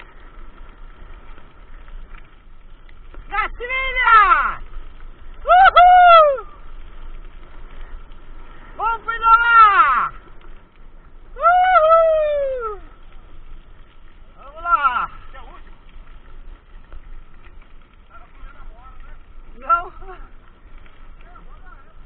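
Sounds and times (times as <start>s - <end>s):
person hooting: 5.4s - 6.5s, 11.4s - 12.9s.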